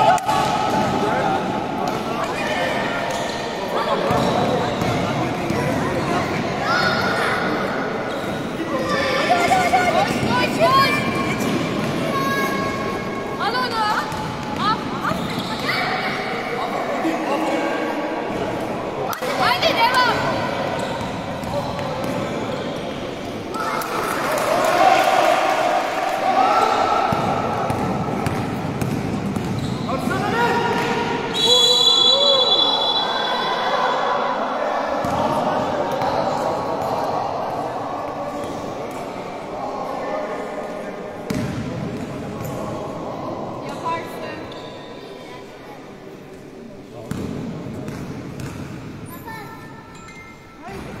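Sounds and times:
people shouting in echoing hall: 0.0 - 1.5, 23.5 - 28.2, 30.2 - 38.3
basketball bouncing on court: 4.1 - 5.6, 27.1 - 29.8, 41.3 - 42.5, 47.1 - 48.8
shoe squeaks and play noise: 15.0 - 15.9, 29.5 - 30.0, 44.4 - 45.1, 49.1 - 50.7
high whistle: 31.3 - 33.5.

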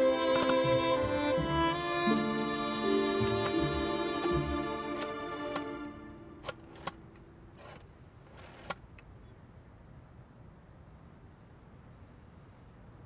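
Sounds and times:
sad string music: 0.0 - 7.8.

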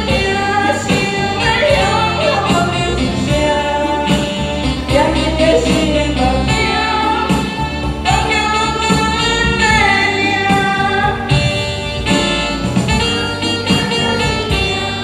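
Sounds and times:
woman singing pop ballad: 0.0 - 11.5, 13.0 - 15.0
karaoke backing track: 0.0 - 15.0.

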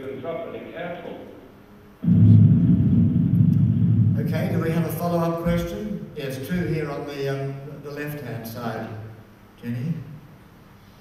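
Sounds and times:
loud low rumble: 2.0 - 6.9.

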